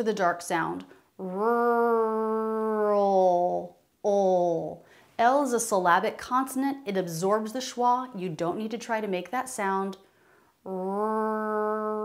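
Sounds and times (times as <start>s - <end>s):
woman holding a long r sound: 1.2s - 3.7s, 10.6s - 12.0s.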